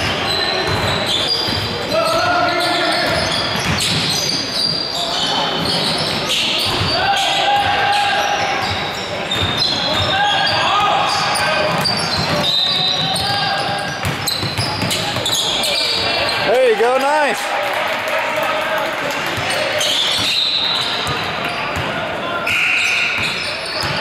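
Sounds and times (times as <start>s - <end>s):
players' voices: 0.1s - 24.0s.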